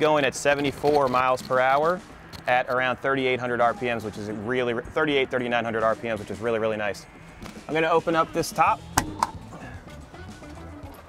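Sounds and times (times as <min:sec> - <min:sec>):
soft background music: 0:00.0 - 0:11.0
sharp clicks of camper roof: 0:08.9 - 0:09.4.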